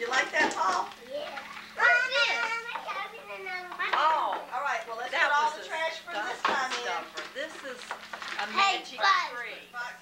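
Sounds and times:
child exclaiming: 1.1 - 3.8.

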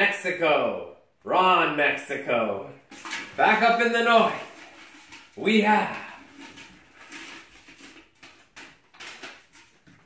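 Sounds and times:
paper slips rustling: 2.9 - 9.9.

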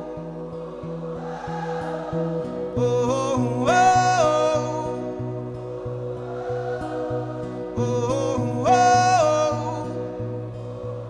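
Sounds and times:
acoustic guitar: 0.0 - 11.0
man singing gospel: 2.7 - 5.2, 7.7 - 10.1.

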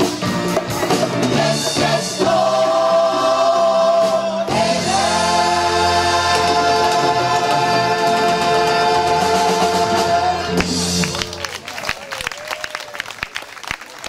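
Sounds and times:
gospel choir singing chords: 1.0 - 11.1.

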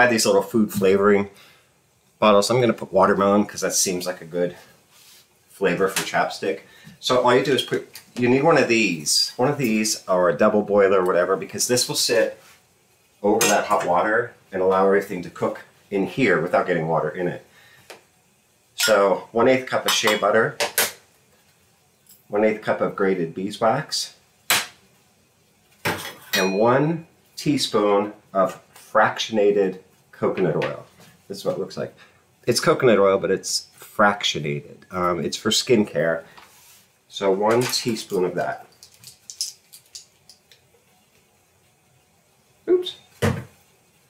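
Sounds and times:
metal kitchenware clinks: 26.0 - 26.6
bottle knocking on countertop: 43.2 - 43.5.

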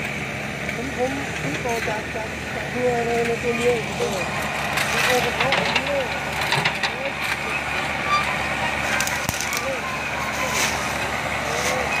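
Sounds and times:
excavator diesel engine running: 0.0 - 12.0.

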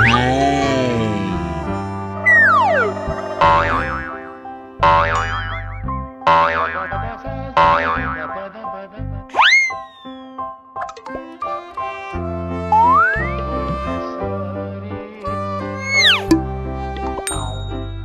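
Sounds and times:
person saying a word: 0.0 - 1.7
children's background music: 0.0 - 18.0
falling whistle glide: 2.2 - 4.4, 9.4 - 10.6, 15.8 - 16.3
rising swoop: 2.2 - 5.9
wobbling boing sounds: 2.3 - 8.4.

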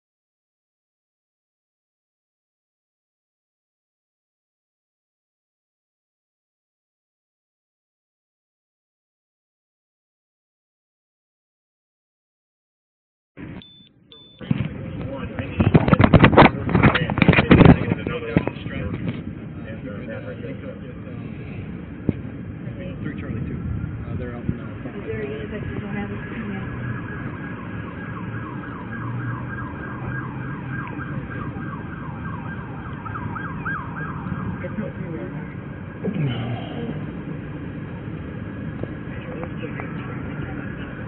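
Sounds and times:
vehicle and street noise: 13.4 - 41.0
siren yelping: 25.8 - 35.2.

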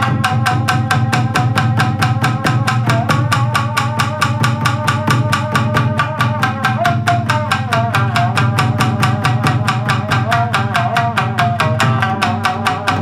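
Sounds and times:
shamisen played fast: 0.0 - 13.0.

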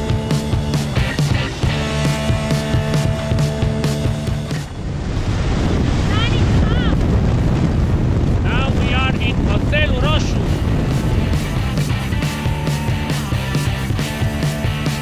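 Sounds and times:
music: 0.0 - 4.8, 10.0 - 15.0
wind rushing over microphone: 0.0 - 15.0.

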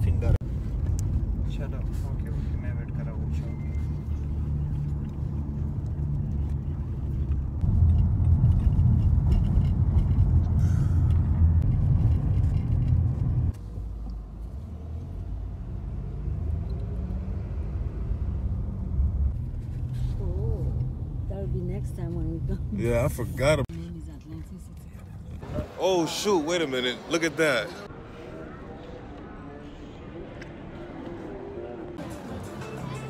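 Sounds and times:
car road and engine noise: 0.0 - 33.0.

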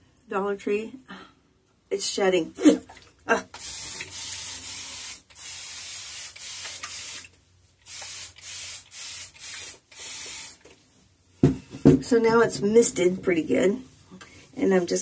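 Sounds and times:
spray bottle hissing sprays: 3.5 - 10.8.

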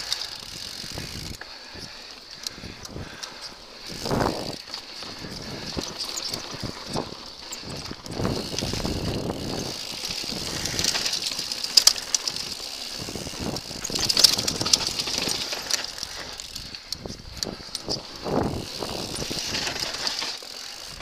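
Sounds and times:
bike rattling over bumps: 0.0 - 21.0
bike tyres rolling over dirt: 0.0 - 21.0.

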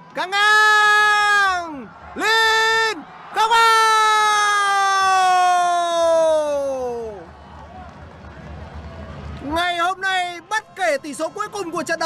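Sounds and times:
man's long drawn-out shout: 0.4 - 7.2.

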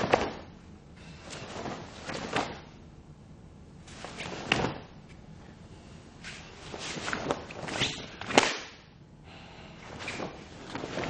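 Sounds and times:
cloth rustle: 0.0 - 0.5, 1.1 - 2.8, 3.8 - 5.2, 6.2 - 8.6, 9.8 - 11.0
martial arts uniform snapping: 0.0 - 0.5, 6.9 - 8.9.

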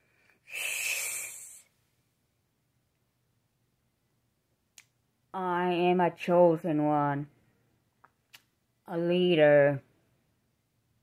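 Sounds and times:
woman hissing through teeth: 0.5 - 1.7.

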